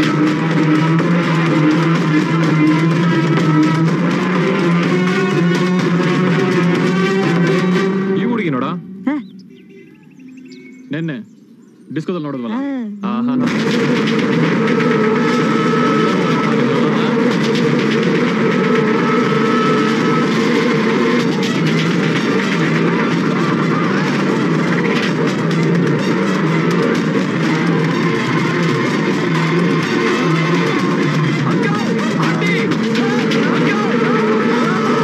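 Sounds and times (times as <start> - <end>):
film music with busy percussion: 0.0 - 35.0.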